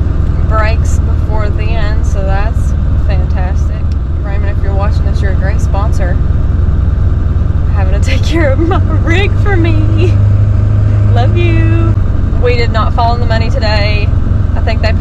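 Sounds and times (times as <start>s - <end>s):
road noise inside cab: 0.0s - 15.0s
truck engine drone: 0.0s - 15.0s
woman talking: 0.4s - 6.2s, 7.7s - 10.2s, 10.9s - 15.0s.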